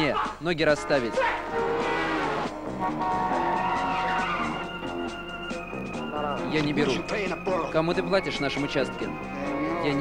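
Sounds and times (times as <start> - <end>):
music playing: 0.0 - 10.0
car tyres squealing: 1.1 - 5.2.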